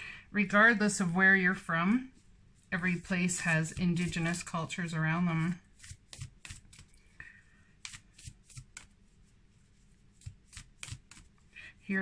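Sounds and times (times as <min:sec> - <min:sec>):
cards shuffled by hand: 0:03.0 - 0:04.6, 0:05.6 - 0:07.1, 0:07.8 - 0:09.0, 0:10.1 - 0:11.4.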